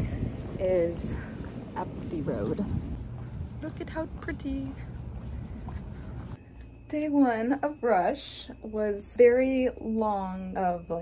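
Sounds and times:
low outdoor rumble: 0:00.0 - 0:08.1
faint scuffing: 0:00.1 - 0:06.4
woman speaking: 0:00.6 - 0:02.8, 0:03.6 - 0:04.9, 0:06.9 - 0:11.0.

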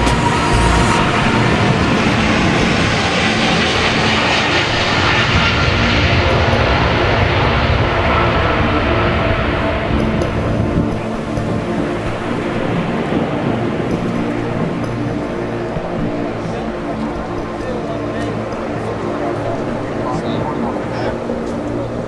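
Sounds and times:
jet engine roar on takeoff: 0:00.0 - 0:22.0.

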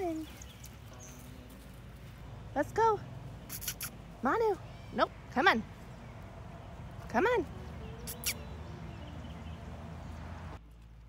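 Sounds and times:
outdoor background noise: 0:00.0 - 0:11.0
sharp high clicks: 0:03.5 - 0:04.0.

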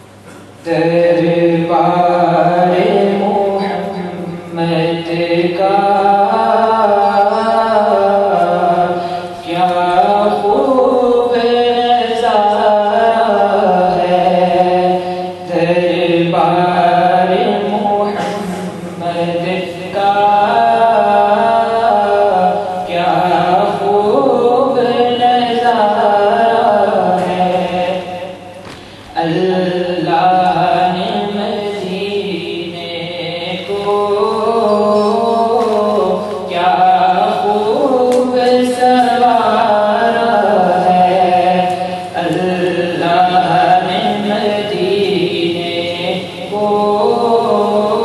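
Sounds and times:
man chanting unaccompanied: 0:00.6 - 0:48.0
man singing devotional song: 0:00.6 - 0:48.0.

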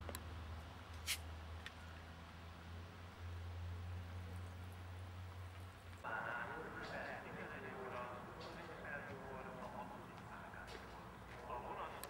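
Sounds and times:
people talking: 0:06.0 - 0:12.0.

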